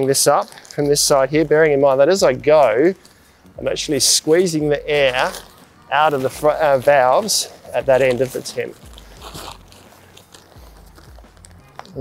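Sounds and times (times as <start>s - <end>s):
fabric crinkling and rustling: 0.0s - 3.3s, 4.0s - 12.0s.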